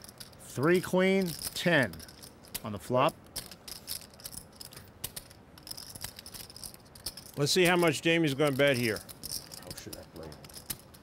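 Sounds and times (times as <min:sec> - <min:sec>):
poker chips clicking: 0:08.4 - 0:11.0.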